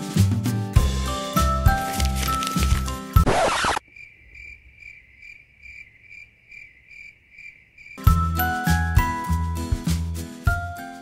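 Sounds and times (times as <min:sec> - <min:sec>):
faint cricket chirping: 0:03.8 - 0:08.0.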